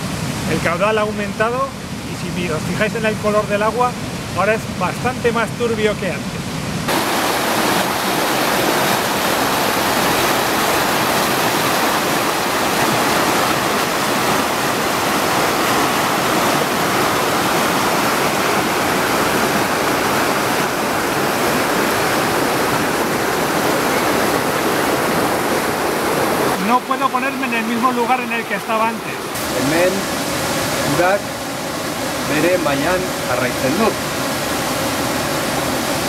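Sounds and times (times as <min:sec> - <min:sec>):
river water rushing over rapids: 0:00.0 - 0:36.0.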